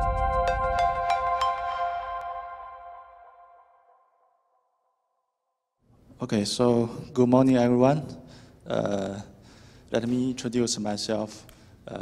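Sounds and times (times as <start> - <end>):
electronic chime: 0.0 - 4.4.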